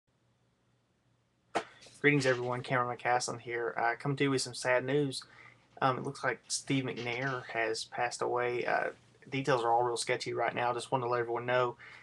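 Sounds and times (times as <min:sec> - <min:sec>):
person speaking: 0:01.6 - 0:12.0.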